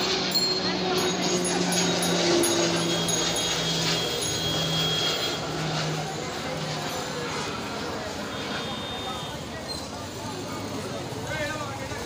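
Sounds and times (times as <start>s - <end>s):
chatter of passers-by: 0.0s - 12.0s
street traffic: 0.0s - 12.0s.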